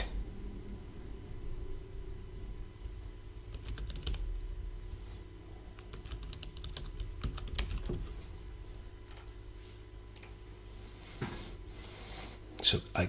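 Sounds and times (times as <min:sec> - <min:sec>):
typing on computer keyboard: 0:03.5 - 0:04.2, 0:05.8 - 0:08.0.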